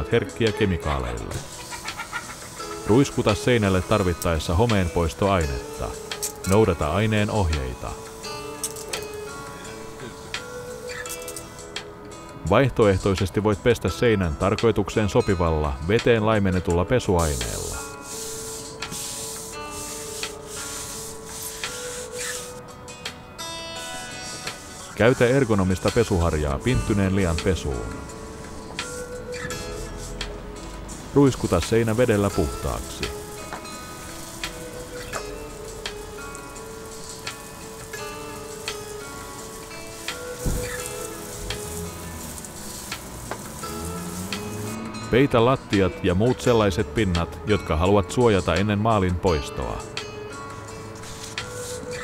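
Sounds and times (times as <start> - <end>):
background music: 0.0 - 52.0
brush scrubbing wooden wall: 1.4 - 4.7, 17.2 - 22.6, 23.8 - 26.3, 31.0 - 44.8, 51.0 - 52.0
hose nozzle spraying water: 1.4 - 11.6, 17.2 - 22.6, 23.8 - 44.9, 51.0 - 52.0.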